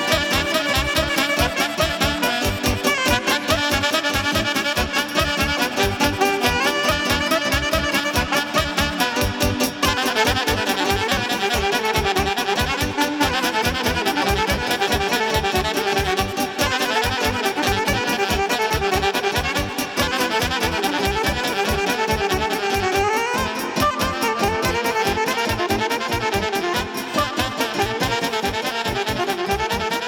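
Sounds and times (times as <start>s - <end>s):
alto saxophones playing melody: 0.0s - 30.0s
backing band fast beat: 0.0s - 30.0s.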